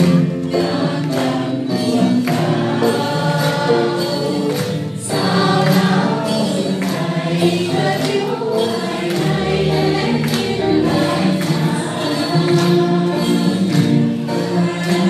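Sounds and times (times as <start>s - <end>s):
percussion: 0.0s - 15.0s
voices singing together: 0.0s - 15.0s.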